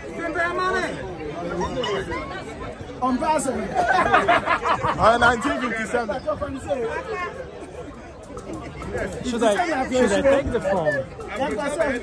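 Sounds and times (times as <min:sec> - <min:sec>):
people chatting: 0:00.0 - 0:12.0.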